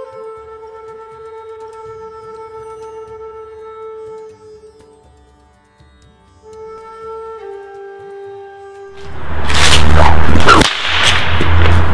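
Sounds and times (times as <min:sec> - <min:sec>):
whip swishing through air: 0:09.0 - 0:11.9.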